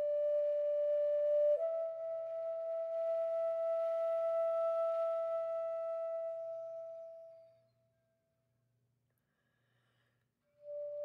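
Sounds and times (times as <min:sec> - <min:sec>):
flute holding long note: 0:00.0 - 0:07.5, 0:10.6 - 0:11.0.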